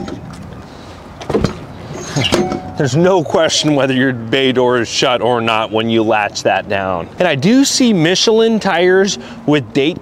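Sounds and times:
latch handle clunk: 0:02.2 - 0:02.8.

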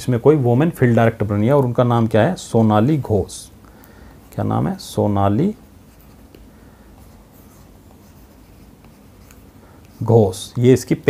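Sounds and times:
low room noise: 0:00.0 - 0:11.0
stylus scratching and tapping tablet: 0:04.3 - 0:11.0.

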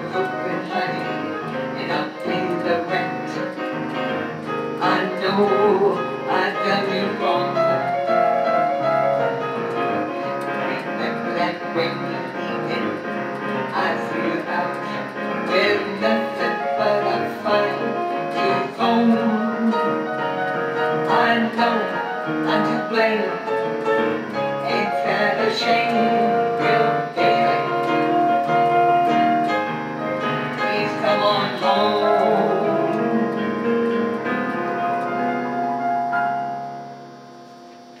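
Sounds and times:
electronic keyboard piano chords: 0:00.0 - 0:38.0.

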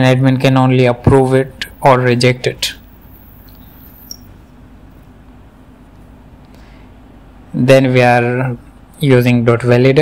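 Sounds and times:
faint low hum: 0:00.0 - 0:10.0
background hiss: 0:01.2 - 0:09.5.

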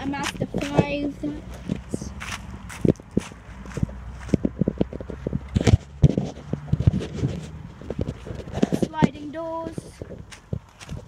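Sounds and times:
footsteps: 0:00.0 - 0:11.0.

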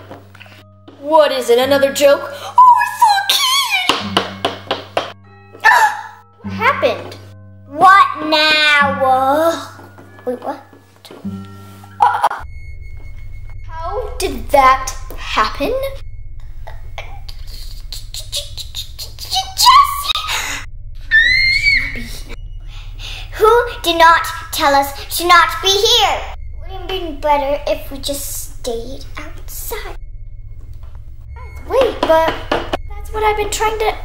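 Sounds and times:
held music tones: 0:00.0 - 0:34.0
girl screaming: 0:02.4 - 0:04.0, 0:05.6 - 0:06.2, 0:19.3 - 0:22.4
low steady hum: 0:06.2 - 0:34.0.

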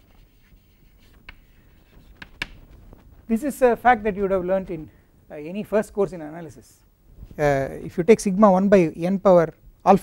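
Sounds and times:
chalk scratching on blackboard: 0:00.0 - 0:02.6
chalk tap: 0:00.2 - 0:02.6.

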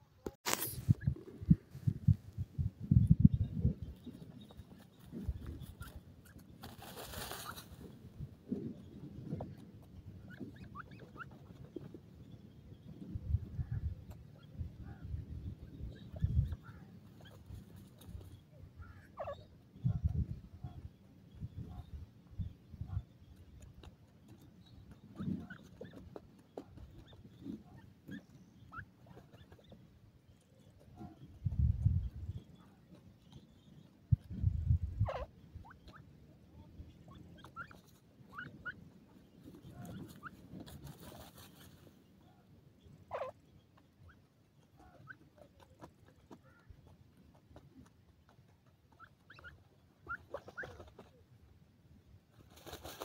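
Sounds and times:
young birds calling: 0:03.2 - 0:51.2
small clicks and rustles: 0:39.4 - 0:42.0, 0:52.3 - 0:53.0.

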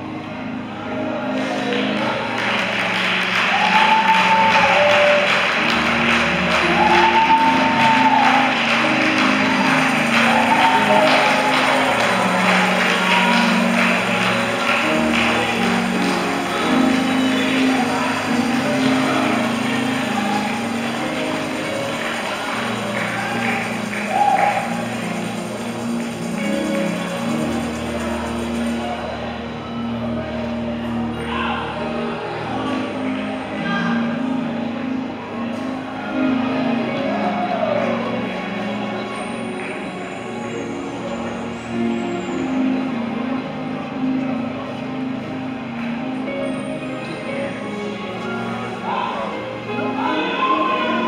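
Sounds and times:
keyboard sustained chords: 0:00.0 - 0:51.0
congregation calling out: 0:01.3 - 0:28.8
congregation clapping: 0:01.4 - 0:29.0.

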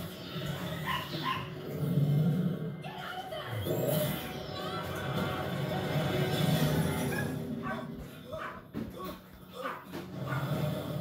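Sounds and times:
background music: 0:00.0 - 0:11.0
dinosaur growl: 0:01.6 - 0:02.8, 0:09.9 - 0:11.0.

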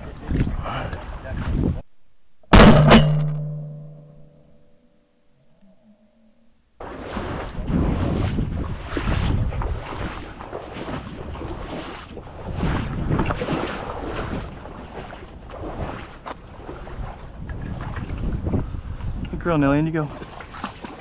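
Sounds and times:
wind buffeting microphone: 0:00.0 - 0:01.8, 0:06.9 - 0:21.0.

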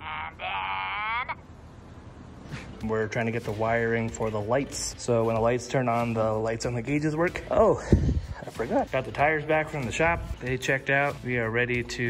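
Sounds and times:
person calling out: 0:00.0 - 0:01.4
faint hum: 0:00.0 - 0:03.5.

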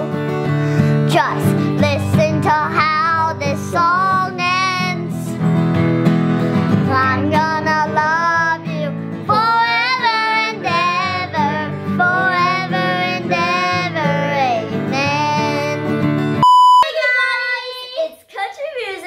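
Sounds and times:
girl singing country song: 0:00.0 - 0:05.7, 0:06.5 - 0:18.2
strummed acoustic guitar: 0:00.0 - 0:16.4
loud steady beep: 0:16.4 - 0:16.9.

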